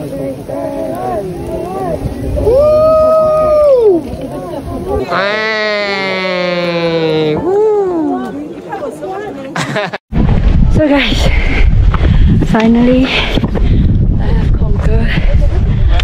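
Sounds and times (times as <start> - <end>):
people making long wordless calls: 5.0 - 8.3.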